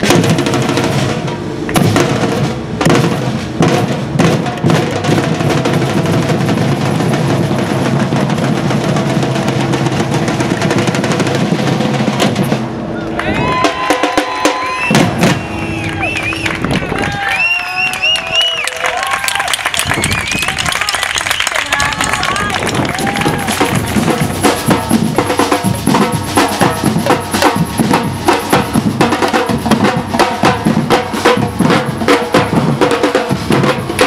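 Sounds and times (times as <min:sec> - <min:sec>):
drum ensemble playing: 0:00.0 - 0:18.2, 0:22.0 - 0:34.0.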